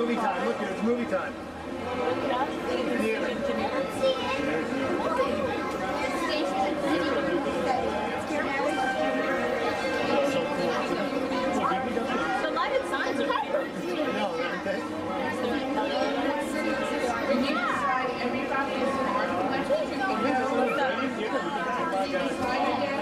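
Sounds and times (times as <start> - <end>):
indistinct chatter of many people: 0.0 - 23.0.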